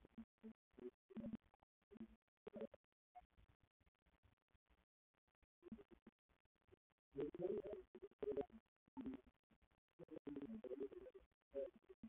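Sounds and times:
man talking quietly: 7.2s - 8.5s.

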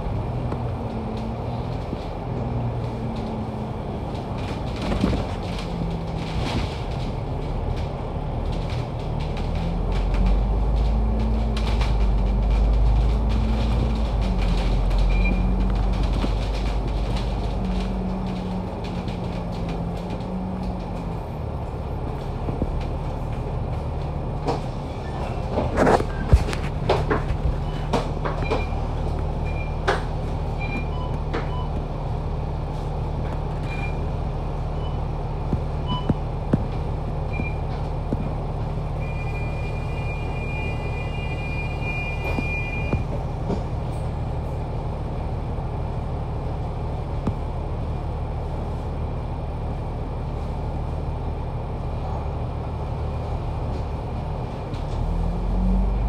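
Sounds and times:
bus diesel engine: 0.0s - 56.0s
knocks and rattles: 25.4s - 30.2s.

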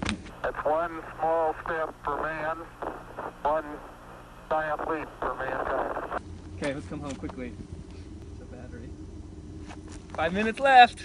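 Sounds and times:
man talking over crackly radio: 0.4s - 7.5s.

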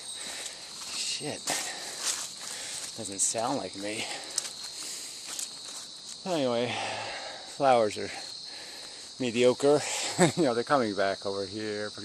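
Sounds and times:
footsteps walking: 0.0s - 6.2s
high-pitched insect drone: 0.0s - 12.0s.

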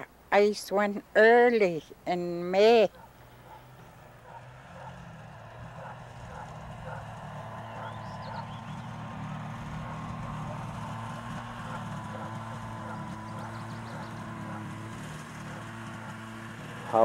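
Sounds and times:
snowmobile engine running: 3.3s - 17.0s.

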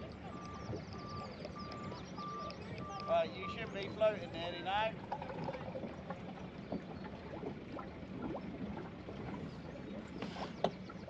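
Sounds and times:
steady low hum: 0.0s - 11.0s
water lapping against hull: 0.0s - 11.0s.

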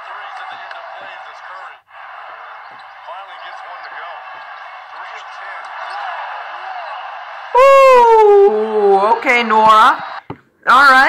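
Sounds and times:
arena crowd noise: 0.0s - 11.0s
young man shouting ooh: 7.6s - 8.8s.

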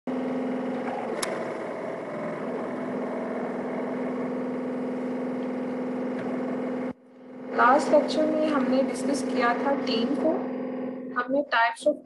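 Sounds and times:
droning hum: 0.1s - 12.0s.

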